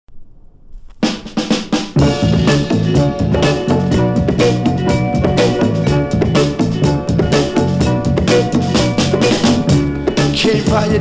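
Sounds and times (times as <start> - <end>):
snare drum fill: 1.0 - 2.8
soul music: 1.9 - 11.0.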